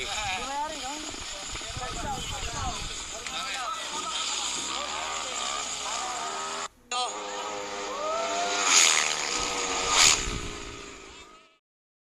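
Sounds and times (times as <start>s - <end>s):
loud bursts: 0.0s - 11.4s
scooter engines revving: 0.0s - 11.6s
people shouting: 7.8s - 9.1s.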